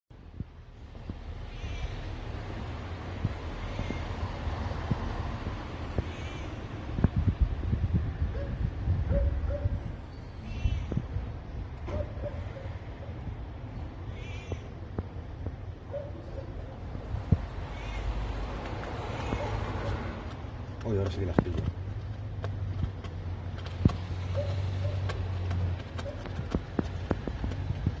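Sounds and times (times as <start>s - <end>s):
low rumbling microphone noise: 4.2s - 10.0s.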